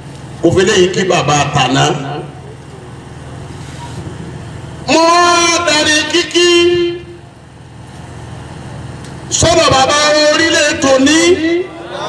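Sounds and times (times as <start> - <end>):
public-address system hum: 0.0 - 12.0.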